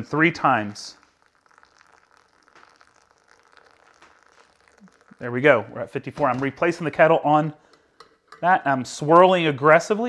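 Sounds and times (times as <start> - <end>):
water pouring onto ground coffee: 0.0 - 6.4.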